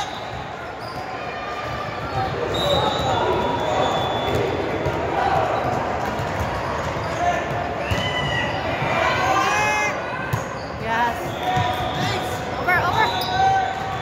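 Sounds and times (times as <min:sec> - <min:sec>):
hubbub of voices: 0:00.0 - 0:14.0.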